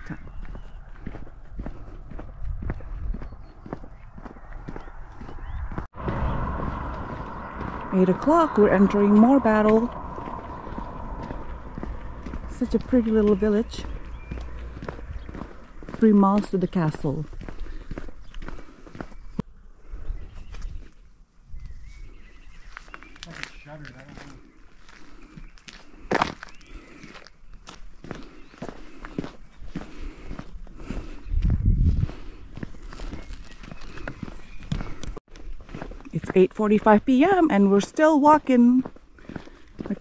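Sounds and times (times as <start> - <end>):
footsteps on tarmac: 0.0 - 19.5, 21.6 - 40.0
low steady rumble: 5.6 - 15.3.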